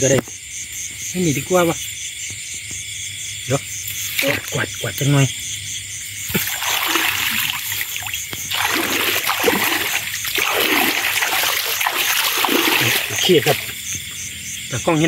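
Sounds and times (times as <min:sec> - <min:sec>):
insects chirping: 0:00.0 - 0:15.0
water splashing and sloshing: 0:03.9 - 0:04.9, 0:06.2 - 0:14.2.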